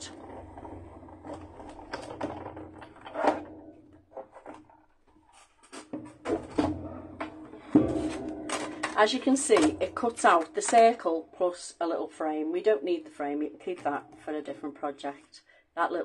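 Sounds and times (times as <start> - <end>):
plastic plates clicking and knocking: 0.0 - 11.0.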